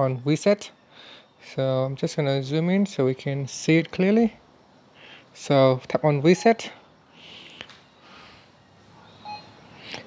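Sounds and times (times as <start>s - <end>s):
touchscreen beep: 9.2s - 9.6s.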